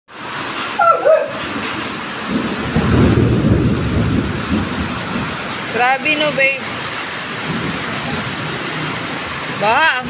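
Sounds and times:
heavy rain pouring: 0:00.1 - 0:10.0
low rumble of thunder: 0:02.0 - 0:09.7.

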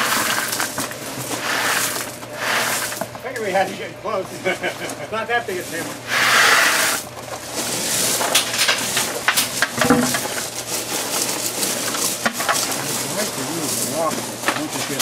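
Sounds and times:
gravel scraping and rattling: 0:00.0 - 0:03.5, 0:05.4 - 0:15.0.

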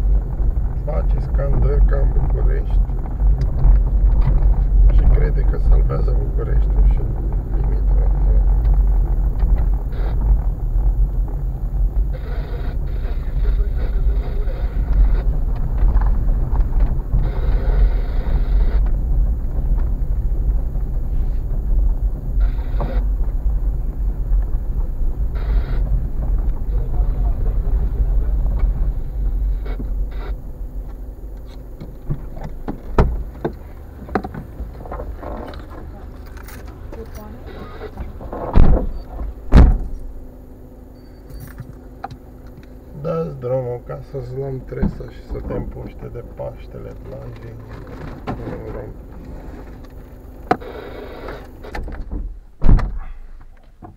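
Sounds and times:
car driving over rough road: 0:00.0 - 0:53.9.

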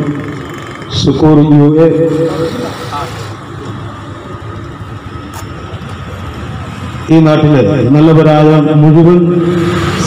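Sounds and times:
motor vehicle passing: 0:00.0 - 0:01.2, 0:01.8 - 0:07.2, 0:09.3 - 0:10.0.

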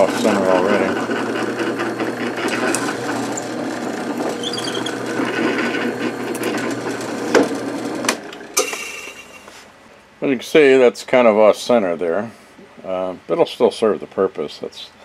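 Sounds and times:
drill press boring into wood: 0:00.0 - 0:08.7
spindle winding down: 0:00.0 - 0:09.2.

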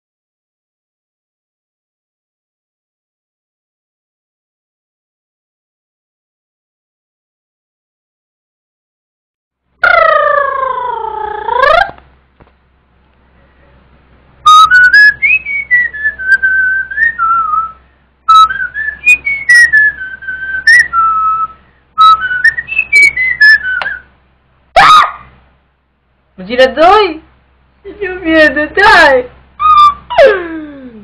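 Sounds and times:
whistled melody: 0:14.4 - 0:24.1, 0:29.6 - 0:30.6.

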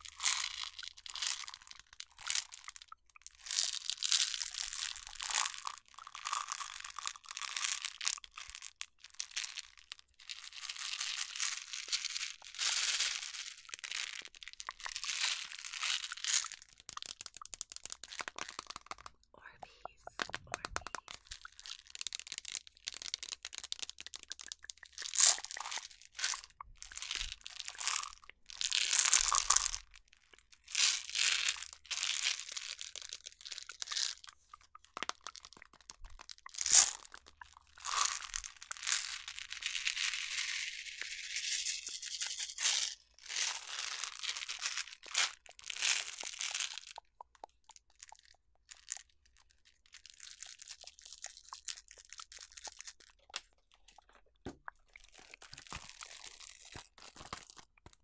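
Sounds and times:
candies rattling in plastic jar: 0:00.0 - 0:19.2, 0:19.9 - 0:58.0.

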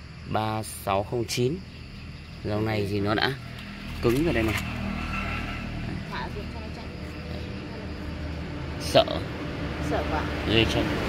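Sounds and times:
engine humming: 0:01.1 - 0:11.0.

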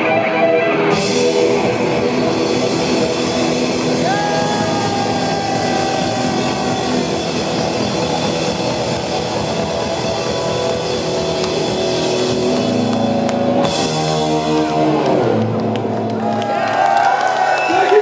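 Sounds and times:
heavy metal band playing live: 0:00.0 - 0:16.4.

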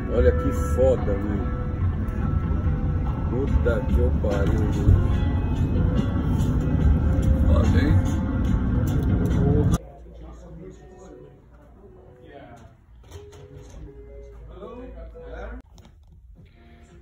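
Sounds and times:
shop interior ambience: 0:00.0 - 0:17.0
vehicle road noise rumble: 0:01.6 - 0:09.8.

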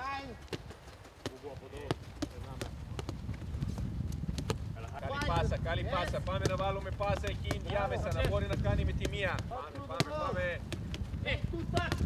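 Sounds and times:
boot kicking football: 0:00.2 - 0:12.0
players calling: 0:04.6 - 0:12.0.

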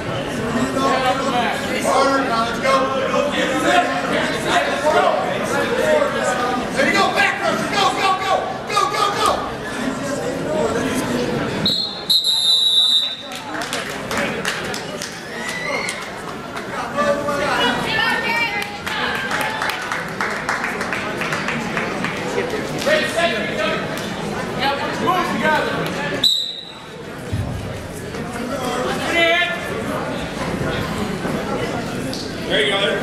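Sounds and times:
crowd voices: 0:00.0 - 0:33.0
referee's whistle blasts: 0:11.6 - 0:13.2, 0:26.2 - 0:26.8.

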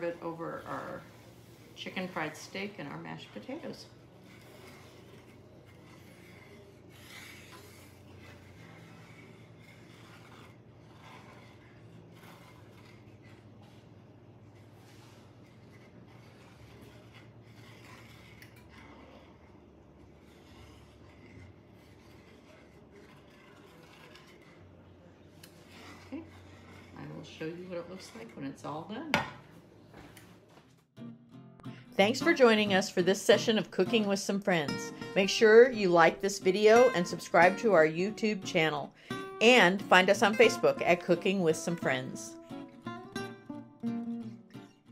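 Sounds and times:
wooden spatula scraping pan: 0:00.0 - 0:29.3, 0:32.0 - 0:42.3.

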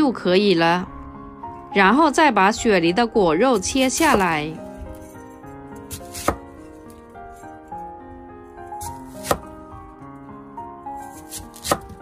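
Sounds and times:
soft background music: 0:00.0 - 0:12.0
knife slicing through pear: 0:03.6 - 0:07.4, 0:08.7 - 0:09.6, 0:11.0 - 0:12.0.

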